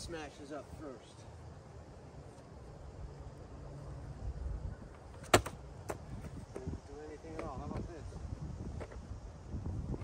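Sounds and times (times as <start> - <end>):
wind rumble on microphone: 6.0 - 10.0.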